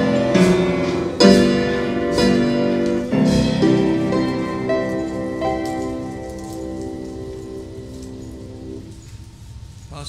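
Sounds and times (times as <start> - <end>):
soft piano chord: 0.0 - 9.2.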